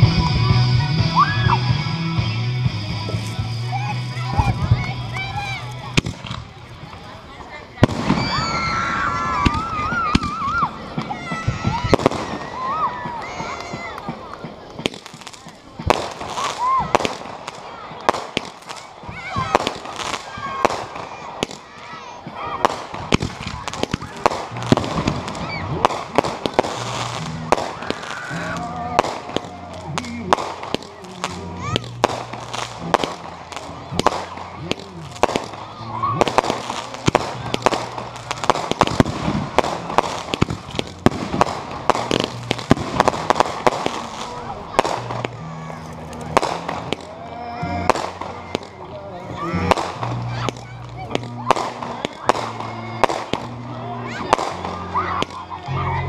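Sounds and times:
fireworks bangs and crackles: 0.0 - 56.0.

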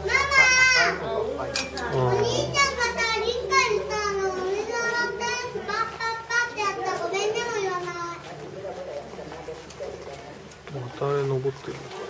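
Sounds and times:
children chattering and calling: 0.0 - 11.1.

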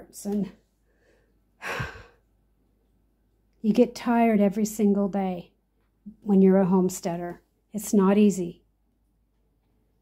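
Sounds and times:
woman sighing: 1.6 - 2.2.

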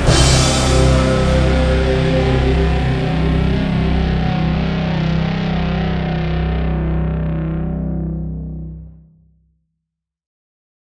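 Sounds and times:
distorted electric guitar chord ringing: 0.0 - 9.0.

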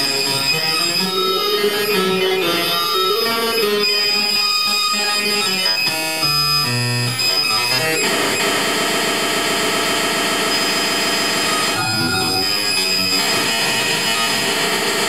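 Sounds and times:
harsh buzzing drone: 11.6 - 14.4
steady high whine: 11.7 - 13.5
electronic tones jumping pitch: 11.8 - 13.4.

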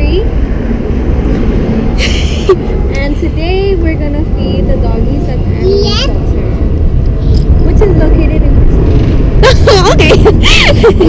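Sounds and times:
loud steady low rumble: 0.0 - 11.0.

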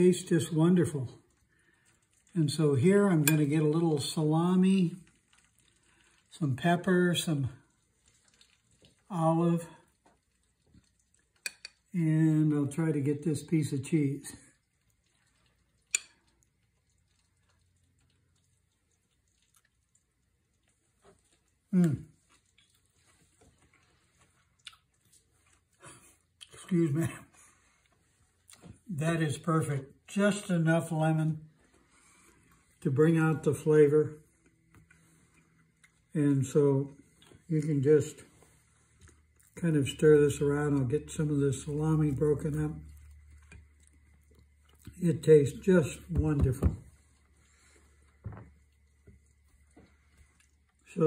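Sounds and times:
faint steady hum: 0.0 - 51.0.

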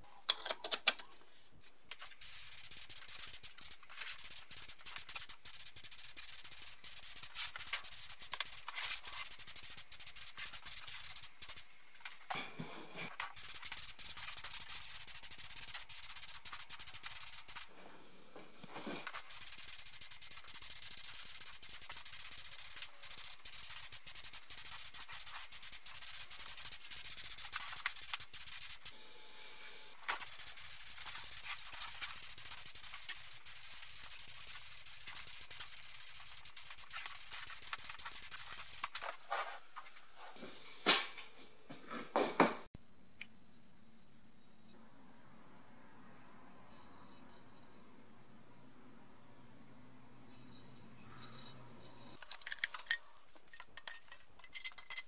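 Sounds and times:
spray gun hissing: 2.0 - 12.3, 12.9 - 17.7, 18.8 - 39.4.

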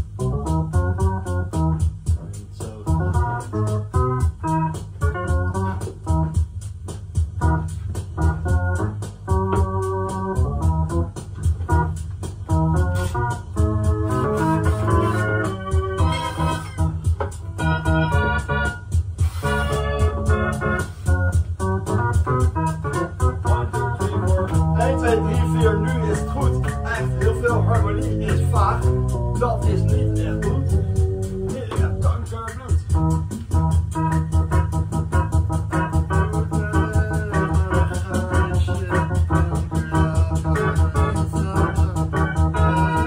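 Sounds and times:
fast ticking beat: 0.0 - 43.0
keyboard chords: 0.0 - 43.0
pulsing bass line: 0.0 - 43.0.

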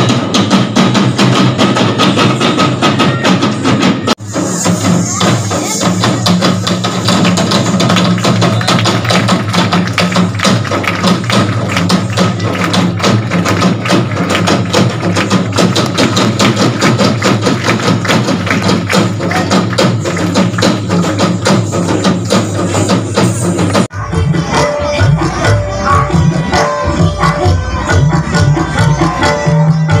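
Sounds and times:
barrel drums beaten fast: 0.0 - 23.9.

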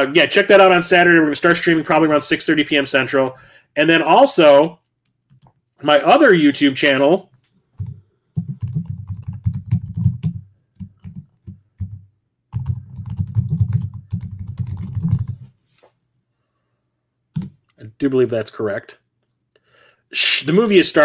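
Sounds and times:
typing on computer keyboard: 5.3 - 5.6, 7.8 - 15.4.

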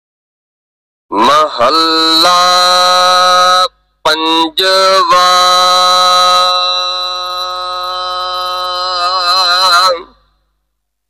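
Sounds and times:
man chanting a long note: 1.1 - 10.3.

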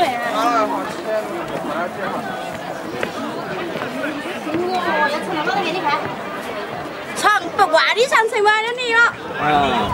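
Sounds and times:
crowd chatter: 0.0 - 9.9.

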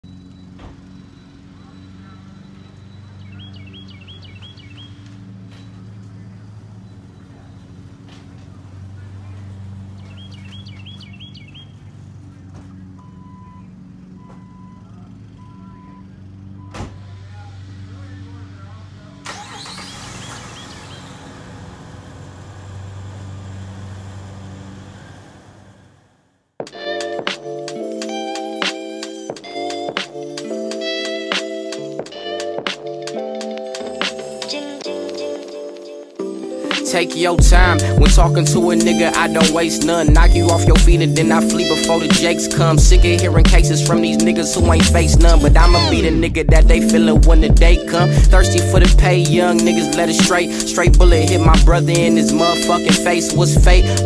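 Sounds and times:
car chime beeping: 0.0 - 21.2
birds chirping: 0.0 - 21.5, 36.5 - 54.0
car engine starting and running: 0.0 - 26.6, 37.0 - 54.0
car door shutting: 0.5 - 1.0, 12.4 - 14.8, 16.6 - 17.3
garage door opening: 12.6 - 17.7.

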